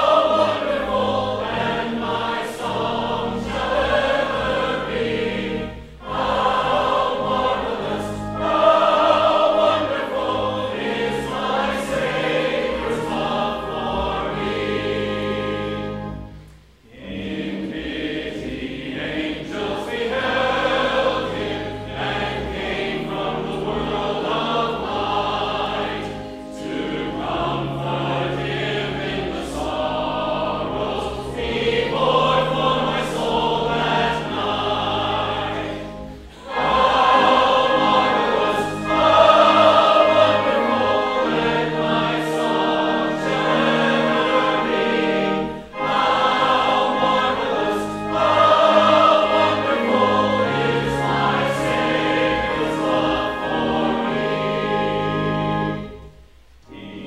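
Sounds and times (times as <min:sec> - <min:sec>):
choir and congregation singing hymn: 0:00.0 - 0:57.0
low organ notes: 0:00.0 - 0:57.0.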